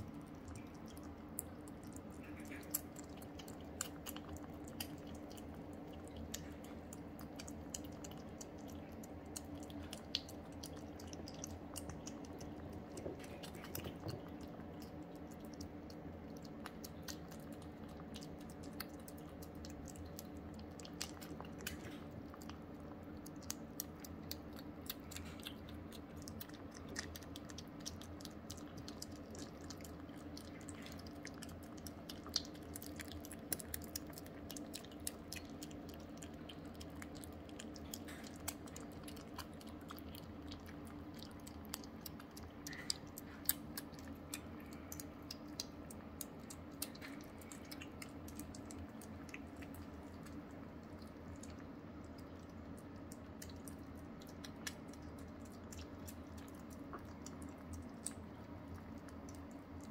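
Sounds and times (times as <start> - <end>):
faint steady hum: 0.0 - 59.9
kittens chewing and licking: 0.0 - 59.9.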